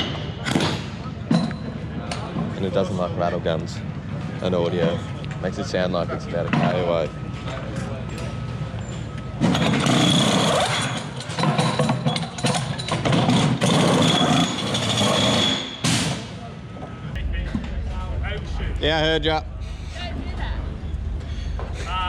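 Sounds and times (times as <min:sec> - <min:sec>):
pneumatic wheel guns whining: 0:09.0 - 0:16.3
low engine rumble: 0:16.4 - 0:22.0.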